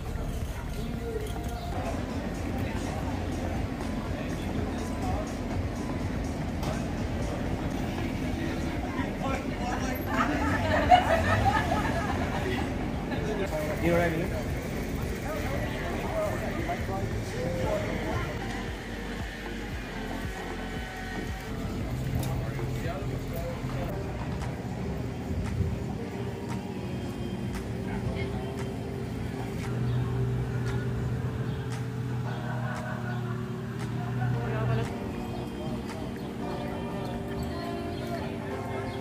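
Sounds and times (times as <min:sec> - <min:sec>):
background music: 0:00.0 - 0:39.0
low rumble of traffic: 0:00.0 - 0:39.0
people chattering: 0:00.0 - 0:39.0.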